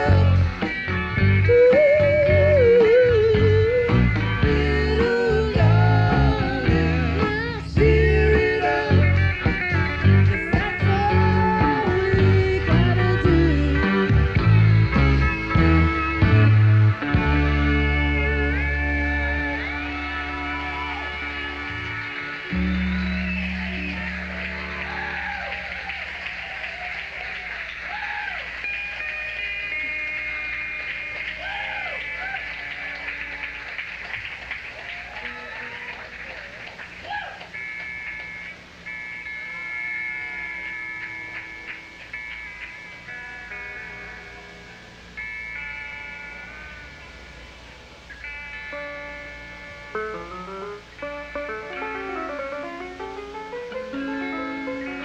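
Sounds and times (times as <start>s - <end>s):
quiet guitar and keyboard noodling: 0.0s - 27.9s, 28.5s - 55.0s
crowd cheering and whooping: 19.2s - 37.7s.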